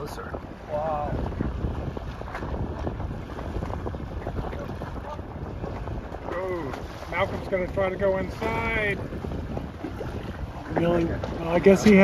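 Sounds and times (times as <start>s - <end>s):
choppy water: 0.0s - 12.0s
wind rumbling on microphone: 0.0s - 12.0s.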